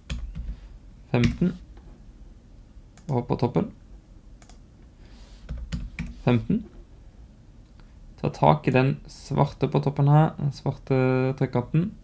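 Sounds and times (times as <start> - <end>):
computer keyboard clicks: 4.4 - 4.6
computer mouse clicks: 4.4 - 4.6.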